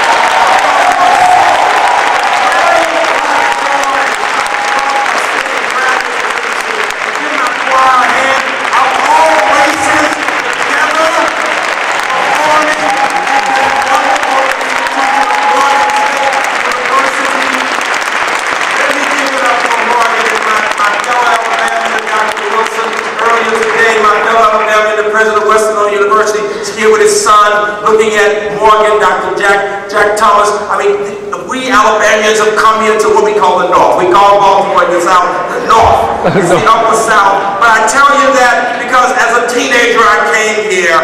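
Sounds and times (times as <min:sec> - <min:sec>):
audience applauding: 0:00.0 - 0:25.5
man's voice: 0:02.4 - 0:17.8, 0:18.8 - 0:41.0.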